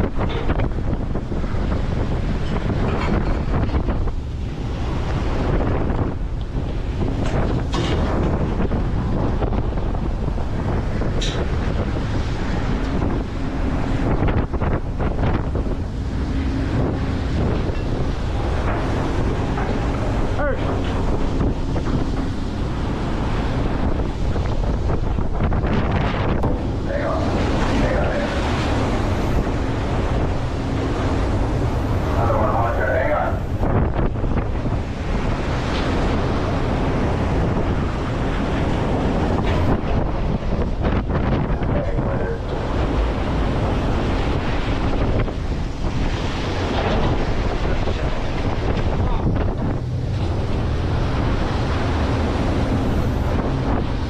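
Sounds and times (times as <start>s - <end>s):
low rumble of boat: 0.0s - 54.0s
waves breaking against hull: 0.0s - 54.0s
wind buffeting microphone: 0.0s - 54.0s.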